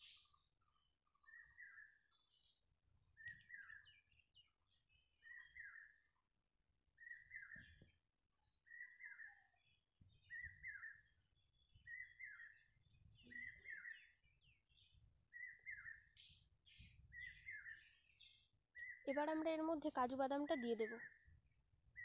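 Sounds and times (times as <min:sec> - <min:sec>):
bird chirping call: 0:00.0 - 0:06.2, 0:07.0 - 0:22.0.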